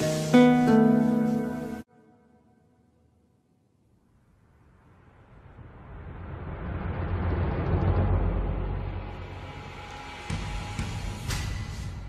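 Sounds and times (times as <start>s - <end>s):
deep rumble: 4.1s - 10.5s.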